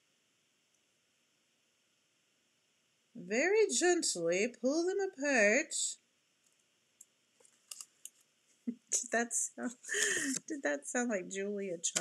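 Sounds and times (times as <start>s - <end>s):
faint paper clicks: 6.4s - 8.3s.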